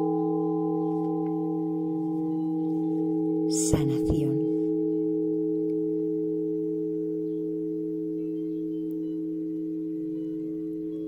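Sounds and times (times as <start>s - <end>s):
low meditation tones ringing: 0.0s - 11.0s.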